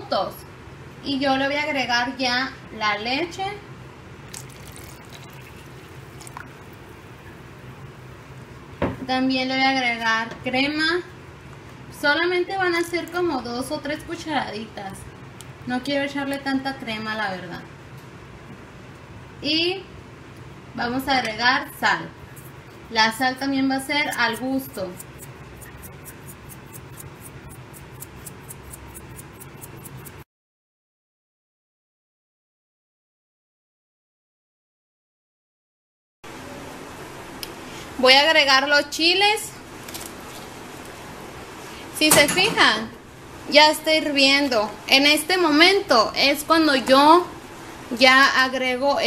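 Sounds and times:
low steady hum: 0:00.0 - 0:30.2
small bubbles popping: 0:04.3 - 0:06.8
liquid simmering in a pot: 0:04.3 - 0:08.2.

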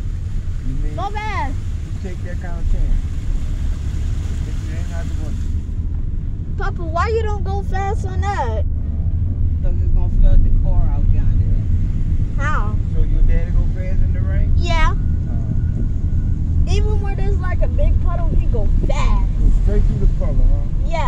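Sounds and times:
road and wind noise: 0:00.0 - 0:21.0
voices: 0:00.6 - 0:03.1, 0:04.4 - 0:05.5, 0:06.5 - 0:16.0, 0:16.6 - 0:21.0.

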